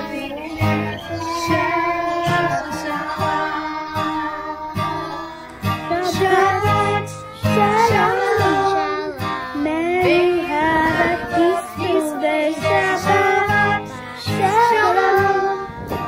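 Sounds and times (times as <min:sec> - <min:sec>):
children's choir singing: 0:00.0 - 0:16.0
instrumental accompaniment: 0:00.0 - 0:16.0
woman singing: 0:00.0 - 0:16.0.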